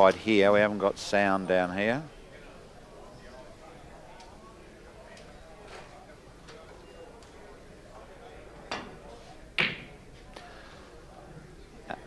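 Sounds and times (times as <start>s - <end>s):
murmur of a hall: 0.0s - 12.0s
cue tip striking ball: 9.6s - 10.0s.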